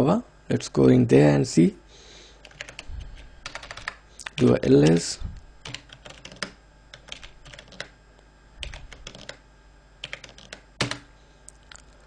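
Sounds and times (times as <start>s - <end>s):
keyboard typing: 2.4s - 8.0s, 8.6s - 9.4s, 10.0s - 11.1s.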